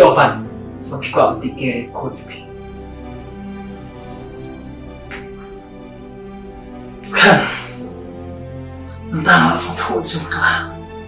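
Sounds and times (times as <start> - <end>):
soft sad background music: 0.0 - 11.0.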